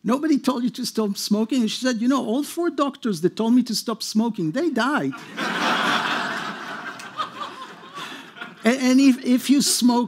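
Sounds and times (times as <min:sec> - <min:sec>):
audience laughing: 0:05.1 - 0:08.8.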